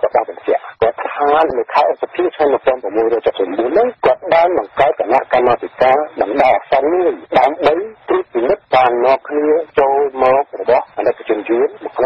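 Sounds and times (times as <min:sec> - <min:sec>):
radio news voice talking: 0:00.0 - 0:12.0.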